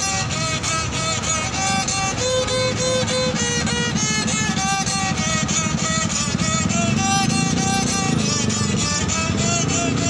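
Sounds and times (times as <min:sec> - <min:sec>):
fiddle playing lively tune: 0:00.0 - 0:10.0
vehicle engine rumble: 0:00.0 - 0:10.0.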